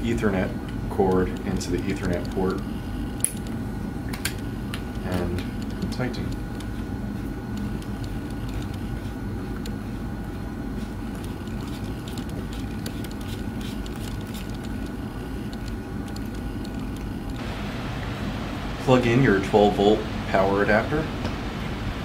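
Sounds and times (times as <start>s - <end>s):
ventilation hum: 0.0s - 22.0s.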